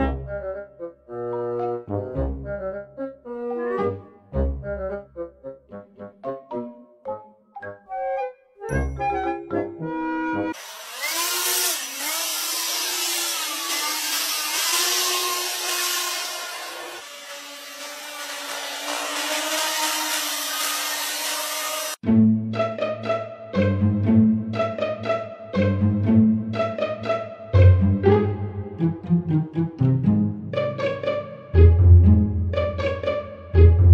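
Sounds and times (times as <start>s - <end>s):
music: 0.0s - 10.6s, 22.0s - 33.9s.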